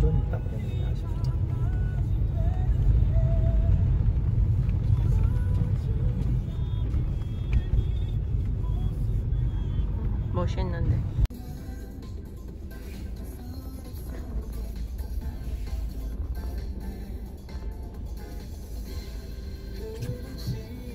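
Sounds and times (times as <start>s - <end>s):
tyre and engine rumble in car: 0.0s - 20.9s.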